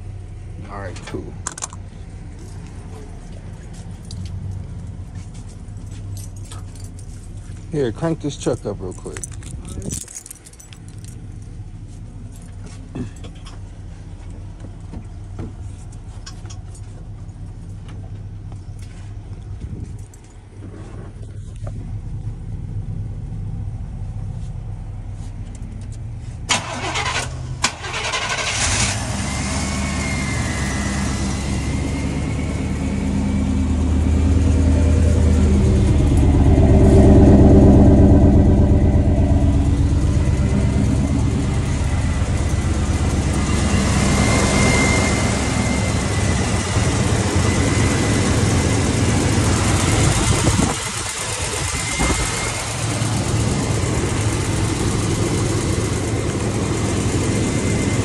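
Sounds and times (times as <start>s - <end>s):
car engine revving: 26.5s - 58.0s
thin high whine: 36.8s - 49.5s.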